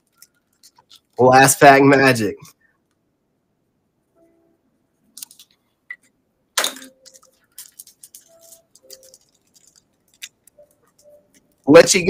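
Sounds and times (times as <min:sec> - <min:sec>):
cards and wrapping crinkling: 0:00.0 - 0:01.2, 0:05.2 - 0:05.6, 0:06.6 - 0:12.0.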